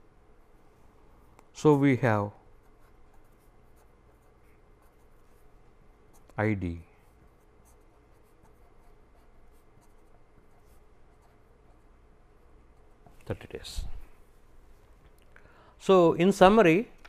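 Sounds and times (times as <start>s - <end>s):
marker pen writing on paper: 2.6s - 6.4s, 7.1s - 12.0s.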